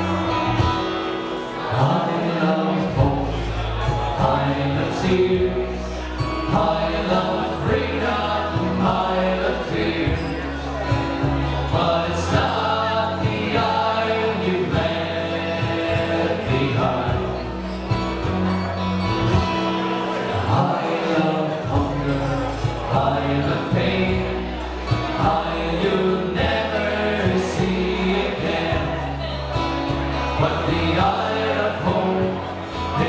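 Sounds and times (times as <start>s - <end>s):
electric bass guitar: 0.0s - 33.0s
strummed acoustic guitars: 0.0s - 33.0s
men singing together: 1.6s - 17.7s, 20.3s - 33.0s.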